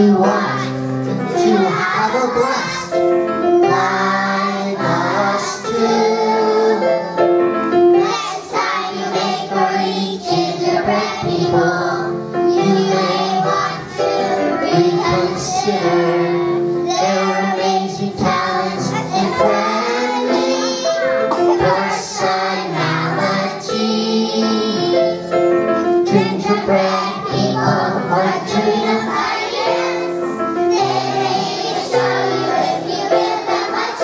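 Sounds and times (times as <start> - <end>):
children's choir singing: 0.0 - 34.0.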